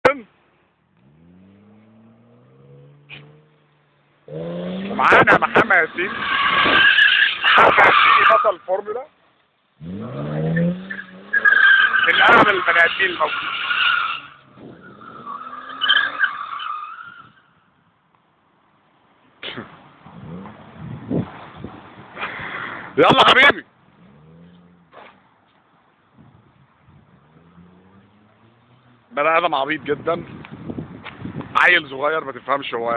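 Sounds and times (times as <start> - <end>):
faint car engine revving: 0.5 - 6.8, 19.5 - 21.8, 23.8 - 25.4, 26.2 - 31.3
car tyres squealing: 1.0 - 9.0, 9.8 - 17.8.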